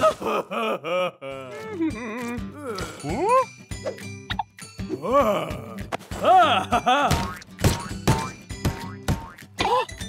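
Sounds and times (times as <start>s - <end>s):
light background music: 1.3s - 10.0s
cartoon knock effects: 7.1s - 9.5s
cartoon boing effects: 7.1s - 9.7s.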